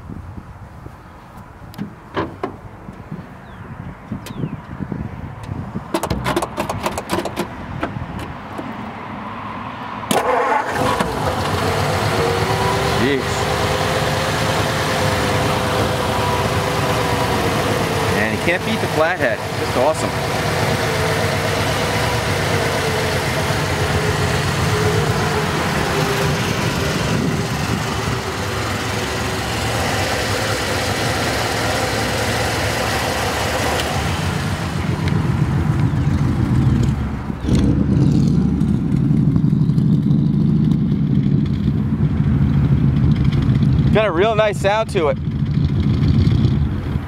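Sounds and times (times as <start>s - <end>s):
car engine idling with clatter: 10.1s - 47.0s
deep exhaust note: 11.1s - 47.0s.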